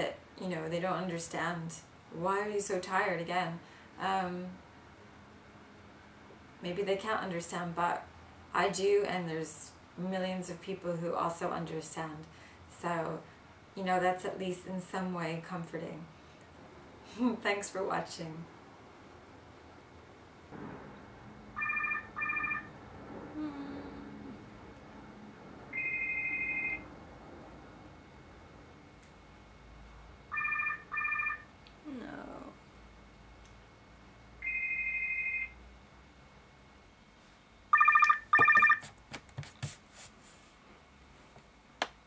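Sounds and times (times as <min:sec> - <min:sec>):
electronic telephone ringing: 0:21.6 - 0:22.8, 0:25.7 - 0:26.9, 0:30.3 - 0:31.5, 0:34.4 - 0:35.6, 0:37.7 - 0:38.8.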